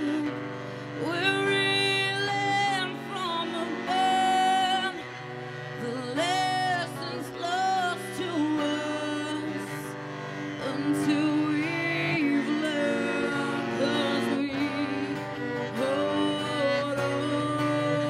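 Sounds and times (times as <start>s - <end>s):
acoustic guitar: 0.0s - 18.0s
bowed cello: 0.0s - 18.0s
woman singing: 0.0s - 18.0s.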